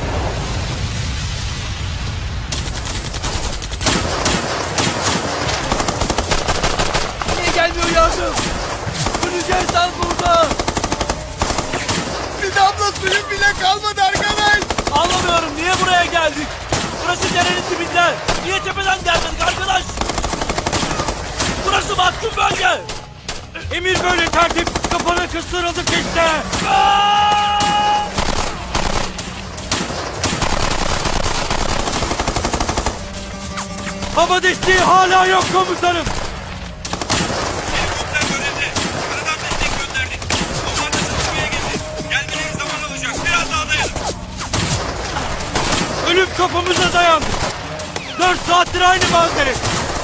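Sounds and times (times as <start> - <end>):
rapid automatic gunfire: 2.5 - 22.0, 23.9 - 26.6, 28.1 - 33.3, 34.6 - 41.9
voices shouting: 25.6 - 29.5.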